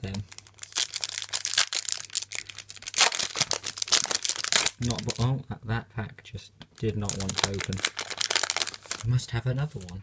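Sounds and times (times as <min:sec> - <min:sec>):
foil wrapper crinkling and tearing: 0:00.0 - 0:05.2, 0:06.8 - 0:09.2.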